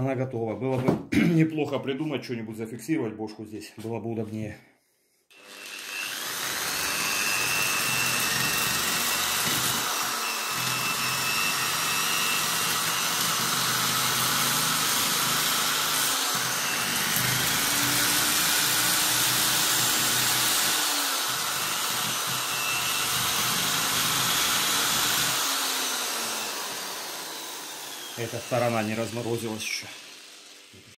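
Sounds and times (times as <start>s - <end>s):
electric drill whirring: 5.3s - 30.9s.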